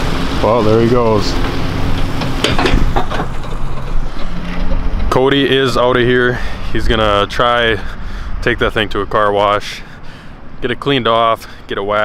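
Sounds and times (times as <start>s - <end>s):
pickup truck engine running: 0.0s - 10.6s.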